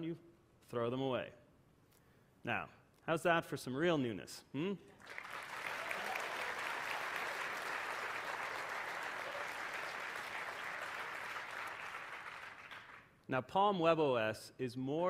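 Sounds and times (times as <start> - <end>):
audience applauding: 5.0 - 13.0.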